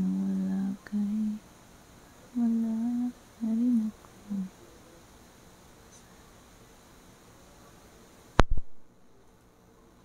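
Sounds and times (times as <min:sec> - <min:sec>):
woman humming: 0:00.0 - 0:01.4, 0:02.4 - 0:04.5.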